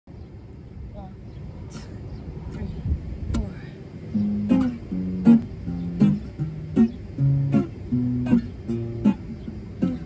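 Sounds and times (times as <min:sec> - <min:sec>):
low outdoor rumble: 0:00.1 - 0:10.0.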